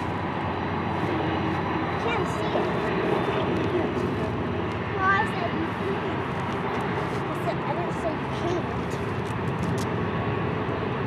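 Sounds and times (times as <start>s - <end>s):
diesel locomotive engine drone: 0.0s - 11.0s.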